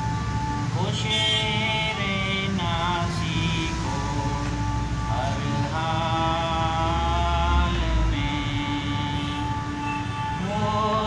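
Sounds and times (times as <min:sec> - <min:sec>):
man singing slow song: 0:00.6 - 0:11.0.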